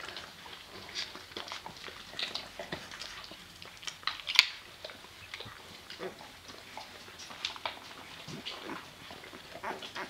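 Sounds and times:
puppies squeaking and grunting: 0:00.0 - 0:10.0
puppies suckling: 0:00.0 - 0:10.0.

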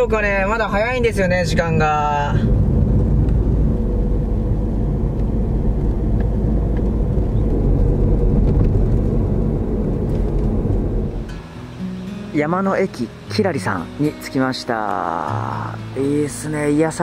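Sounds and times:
tyre and road noise: 0:00.0 - 0:13.2
car engine hum: 0:00.0 - 0:13.6.

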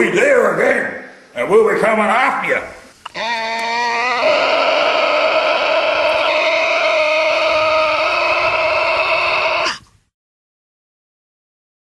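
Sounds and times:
voice-like wail: 0:03.1 - 0:09.8.

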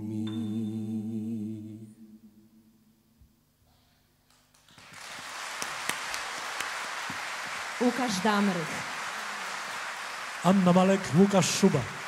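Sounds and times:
audience applauding: 0:04.3 - 0:12.0.

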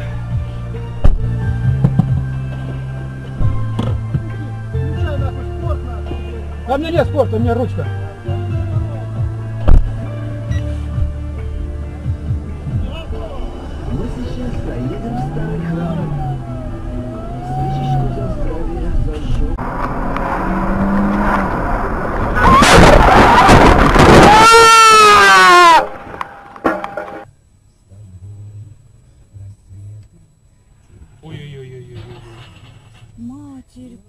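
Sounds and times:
car crash: 0:09.6 - 0:10.2, 0:18.5 - 0:27.3
voices: 0:12.6 - 0:19.6, 0:33.2 - 0:34.0.

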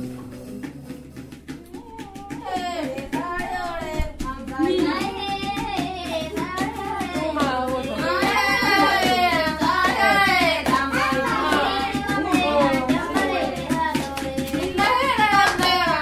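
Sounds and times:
hand clapping: 0:00.0 - 0:16.0
group singing: 0:04.6 - 0:16.0.

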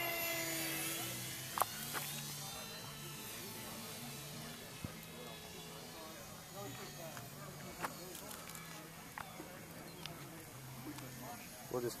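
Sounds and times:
model jet engine whine: 0:00.0 - 0:12.0.

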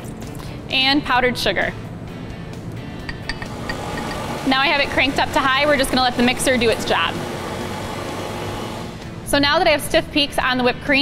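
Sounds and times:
background music: 0:00.0 - 0:11.0
metallic clinks on steel bowl: 0:03.1 - 0:04.1
stand mixer motor running: 0:03.5 - 0:09.0.

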